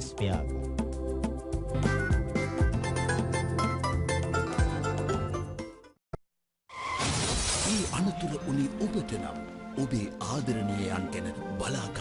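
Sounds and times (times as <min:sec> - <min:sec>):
music: 0:00.0 - 0:06.0, 0:07.7 - 0:12.0
glass shattering: 0:06.9 - 0:08.1.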